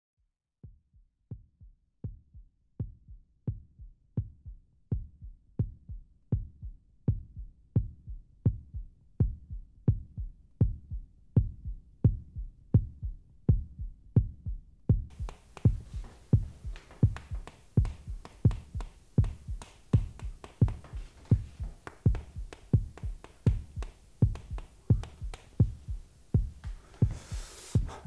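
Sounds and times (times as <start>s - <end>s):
heartbeat thumps: 0.6s - 28.0s.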